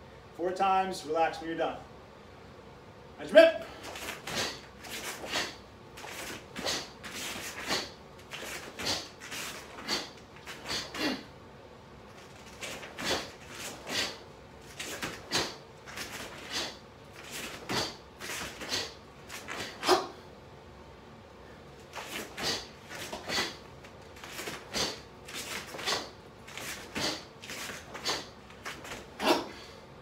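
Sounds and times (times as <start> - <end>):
bare feet on rubber mats: 3.7 - 11.2, 12.1 - 20.2, 21.8 - 29.7.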